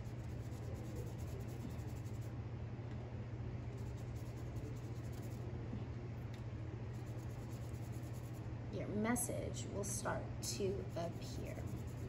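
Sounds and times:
paintbrush brushing on paper: 0.0 - 2.3, 3.8 - 5.4, 6.9 - 8.4, 10.8 - 12.0
low room hum: 0.0 - 12.0.

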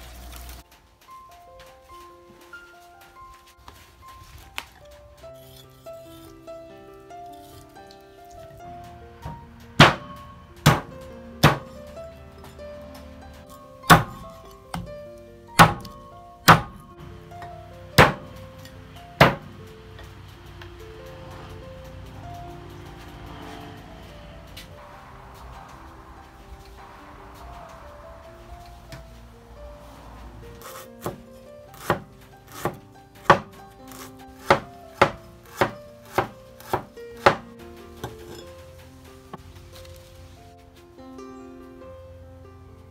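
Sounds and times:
music: 0.0 - 42.9
cleaver chopping on wooden block: 10.7 - 11.6, 13.9 - 14.3, 15.6 - 16.8, 18.0 - 18.2, 19.2 - 19.5, 30.7 - 37.4.

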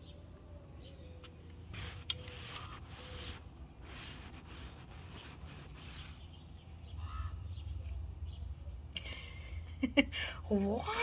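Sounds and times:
soft rustling: 1.3 - 6.9.

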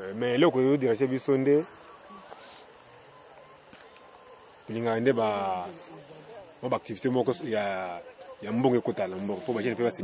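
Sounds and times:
man talking: 0.0 - 1.8, 4.7 - 10.0
insects chirring: 0.0 - 10.0.

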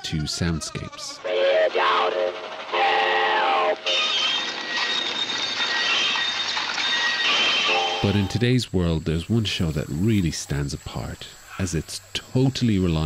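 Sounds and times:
hissing clatter with high tones: 3.7 - 8.4
whistle-like call sliding down: 3.8 - 8.4.

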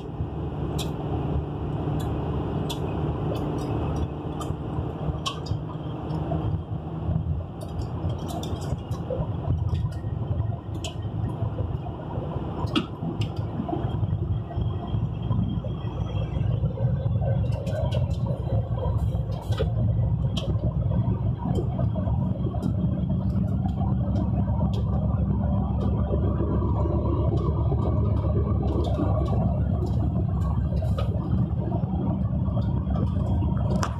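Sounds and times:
vehicle engine and tyre rumble: 0.0 - 33.9
light clicks and rattles: 7.5 - 11.4.

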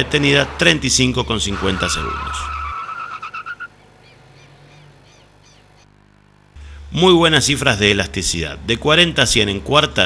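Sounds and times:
car tyres squealing: 0.0 - 3.8
short chirping calls: 1.2 - 6.0.

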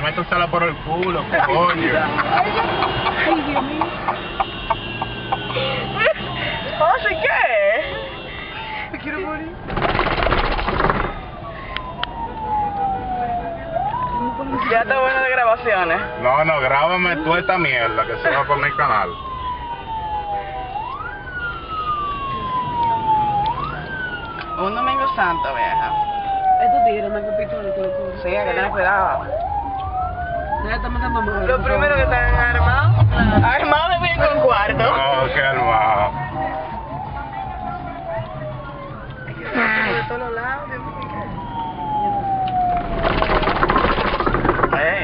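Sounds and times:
traffic rumble: 0.0 - 45.0
vehicle siren wailing: 0.0 - 45.0.

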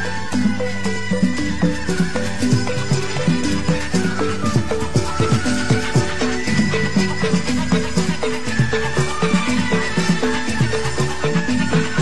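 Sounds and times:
melodic notes: 0.0 - 12.0.

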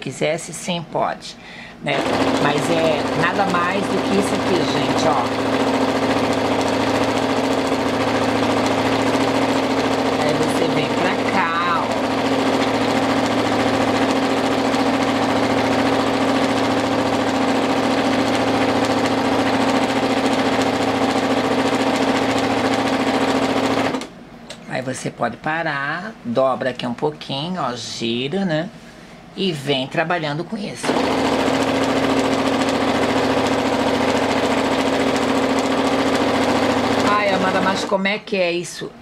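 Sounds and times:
sewing machine stitching: 1.9 - 24.1, 30.8 - 38.0.

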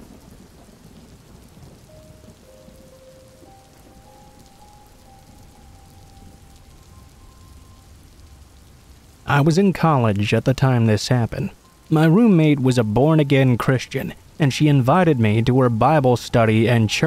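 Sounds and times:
steady rain falling: 0.0 - 17.0
faint held musical notes: 1.3 - 17.0.

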